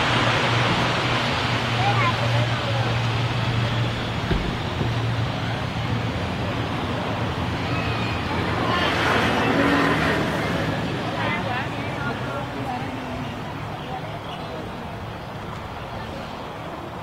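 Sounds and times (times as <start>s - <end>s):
turboprop engines and propellers running: 0.0s - 17.0s.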